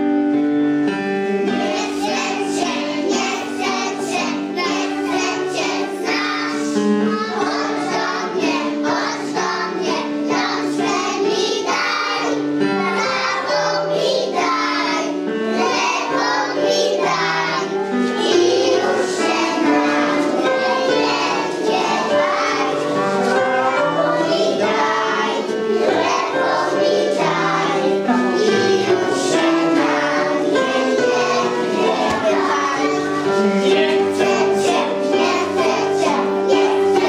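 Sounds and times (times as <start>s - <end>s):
keyboard accompaniment: 0.0s - 37.0s
children singing: 1.4s - 37.0s.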